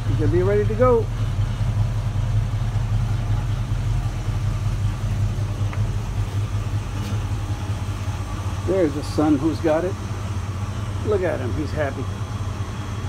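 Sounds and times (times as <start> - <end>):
car engine idling: 0.0 - 13.0.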